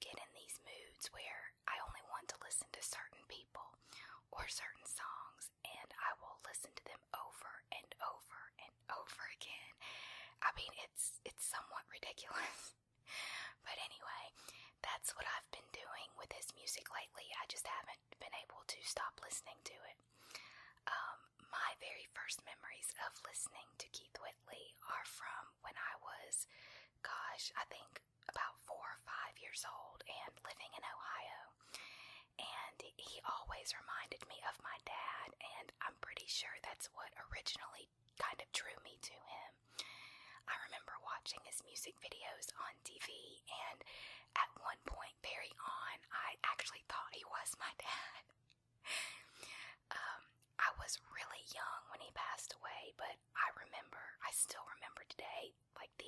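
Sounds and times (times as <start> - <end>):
close-up whispered speech: 0.0 - 12.7, 13.5 - 20.1, 20.8 - 31.6, 32.2 - 39.7, 40.4 - 49.1, 49.8 - 56.0.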